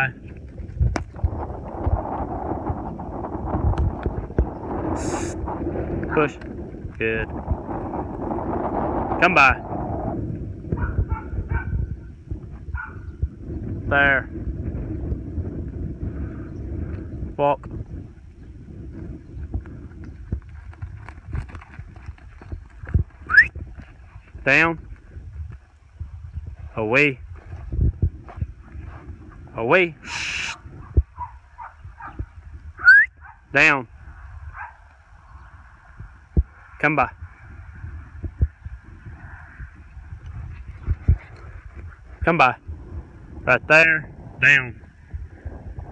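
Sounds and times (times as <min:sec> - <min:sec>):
wind buffeting microphone: 0:00.0 - 0:45.9
short rising whistle: 0:23.3 - 0:23.6, 0:32.8 - 0:33.2
short high hiss: 0:30.0 - 0:30.6.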